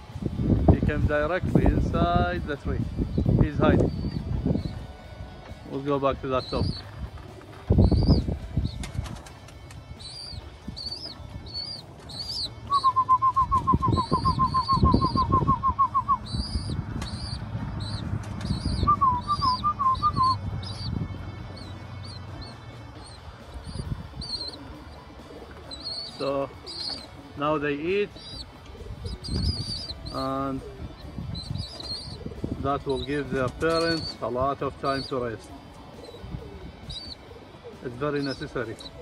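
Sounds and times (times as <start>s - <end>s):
fast bird trill: 2.8s - 4.9s, 5.9s - 39.0s
high bird chirps: 3.0s - 4.9s, 6.3s - 6.9s, 7.7s - 9.0s, 10.0s - 27.2s, 27.8s - 37.4s, 38.0s - 39.0s
pigeon wings flapping: 8.7s - 9.9s.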